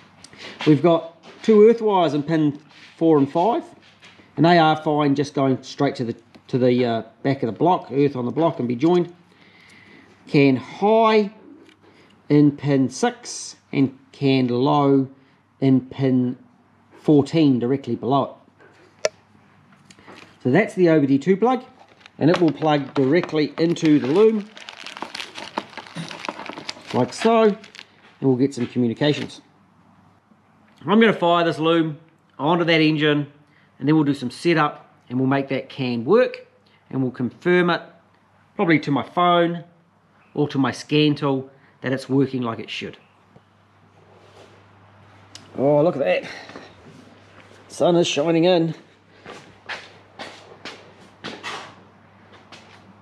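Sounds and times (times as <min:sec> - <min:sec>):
rustling: 0:21.7 - 0:28.7
footsteps on concrete floor: 0:46.4 - 0:47.7, 0:48.8 - 0:53.0.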